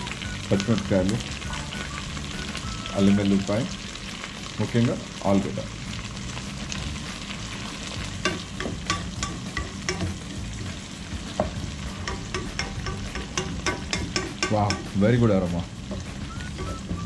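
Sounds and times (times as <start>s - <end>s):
vegetables sizzling in oil: 0.0s - 17.0s.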